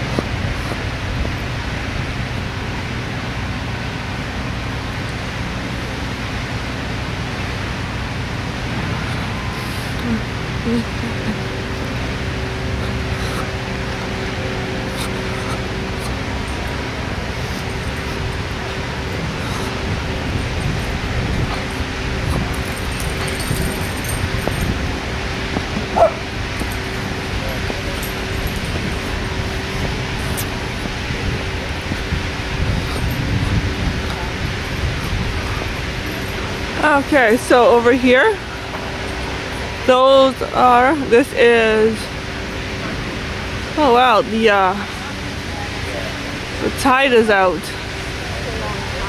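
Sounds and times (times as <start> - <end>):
steady rush with low rumbling: 0.0 - 49.0.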